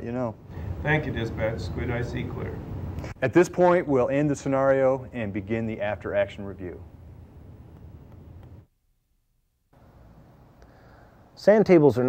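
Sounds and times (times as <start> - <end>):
faint hiss: 0.0 - 8.7, 9.8 - 12.0.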